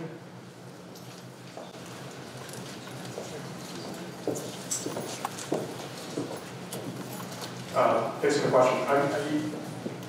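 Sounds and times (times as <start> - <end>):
steady room hum: 0.0 - 10.0
footsteps on hardwood floor: 3.1 - 7.5.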